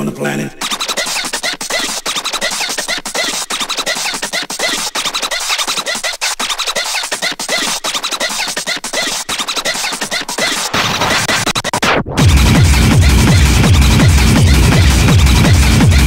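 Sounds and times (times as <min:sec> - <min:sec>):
hard techno music: 0:00.4 - 0:16.0.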